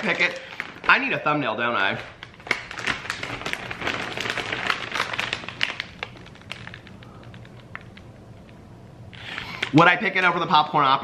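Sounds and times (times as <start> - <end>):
plastic snack bags crinkling: 0.0 - 8.6, 9.2 - 10.6.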